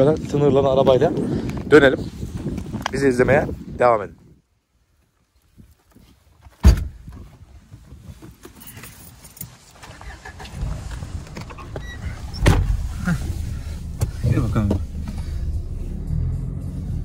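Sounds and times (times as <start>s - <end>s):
car engine and road rumble: 6.5s - 17.0s
car door shutting: 10.2s - 15.5s.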